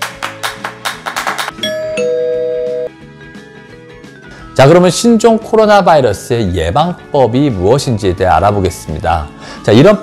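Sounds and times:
background music: 0.0s - 10.0s
two-note doorbell chime: 1.5s - 2.9s.

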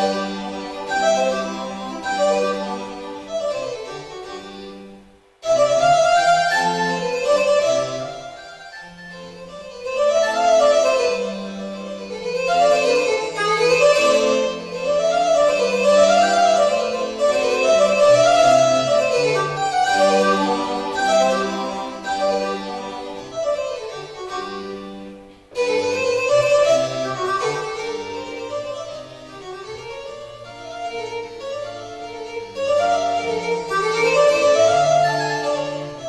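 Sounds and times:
accordion playing fast piece: 0.0s - 36.0s.

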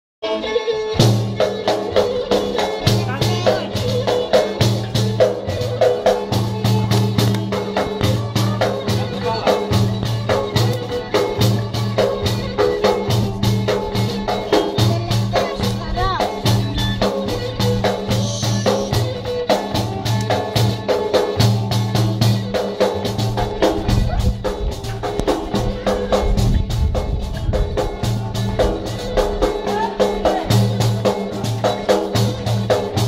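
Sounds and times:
held melody line: 0.2s - 33.0s
frame drum beating: 1.0s - 33.0s.

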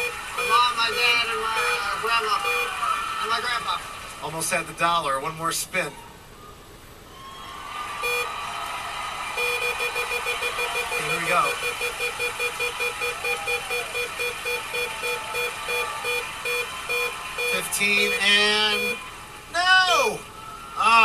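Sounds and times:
studio audience crowd noise: 0.0s - 21.0s.

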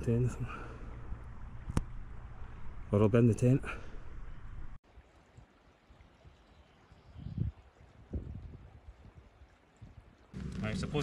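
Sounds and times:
soft outdoor ambience: 0.0s - 11.0s
low wind rumbles on microphone: 7.0s - 11.0s.

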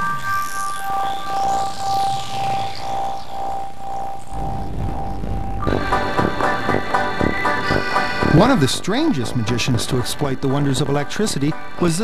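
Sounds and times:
electronic synthesizer music: 0.0s - 12.0s.

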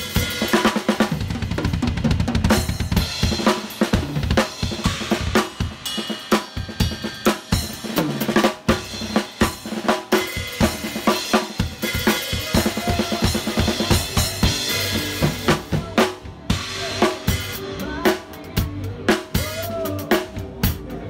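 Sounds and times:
acoustic drum kit playing fast: 0.0s - 21.0s
music track with bass line: 6.7s - 21.0s.

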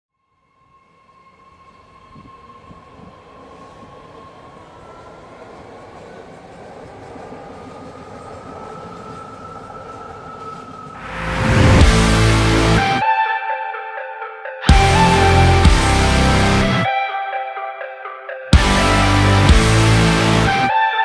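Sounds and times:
train whine: 0.2s - 13.6s, 14.6s - 17.0s, 18.6s - 21.0s
train rumbling rush: 0.7s - 13.1s, 14.7s - 16.9s, 18.6s - 20.8s.

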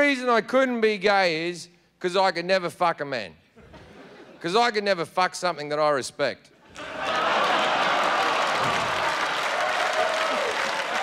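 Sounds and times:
audience applauding: 6.7s - 11.0s.

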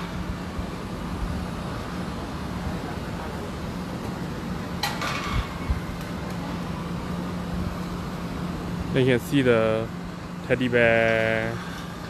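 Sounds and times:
low machine hum: 0.0s - 12.0s
outdoor background noise: 0.0s - 12.0s.

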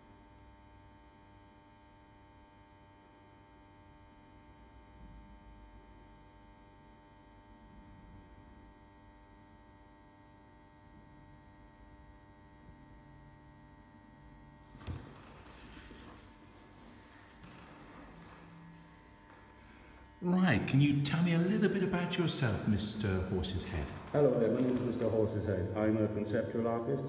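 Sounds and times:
faint electrical hum: 0.0s - 27.0s.

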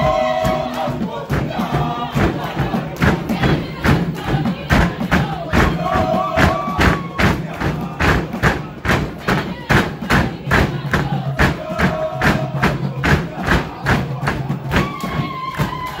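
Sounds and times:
steady dance drumming: 0.0s - 16.0s.

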